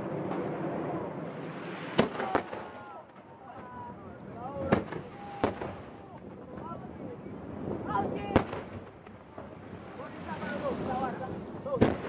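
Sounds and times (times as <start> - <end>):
fireworks sharp bangs: 0.0 - 3.9, 4.6 - 6.8, 7.4 - 10.0, 11.3 - 12.0
fireworks crackling: 0.0 - 12.0.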